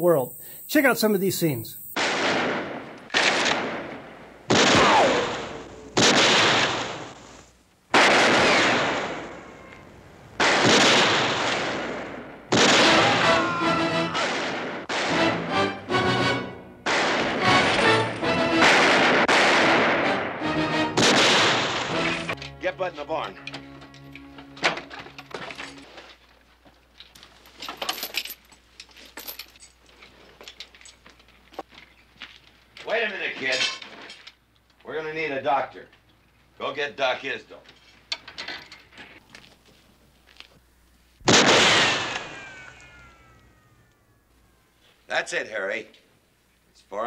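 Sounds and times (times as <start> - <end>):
echoing gunshots: 2.0 - 7.3, 7.9 - 9.7, 10.4 - 13.4, 14.2 - 15.4, 16.8 - 22.3, 41.2 - 43.2
background music: 12.9 - 14.3, 14.9 - 18.8, 19.7 - 25.9.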